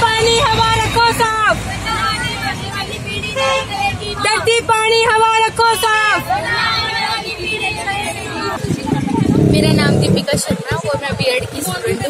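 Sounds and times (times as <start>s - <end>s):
faint crowd voices: 0.0s - 12.0s
road traffic rumbling: 0.0s - 12.0s
crowd chanting slogans: 6.1s - 11.0s.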